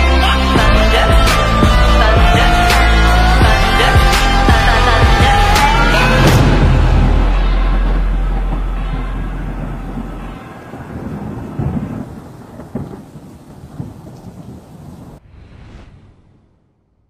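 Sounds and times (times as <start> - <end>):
thunder rumble: 0.6 - 17.0
rain hiss with crackles: 7.8 - 15.2.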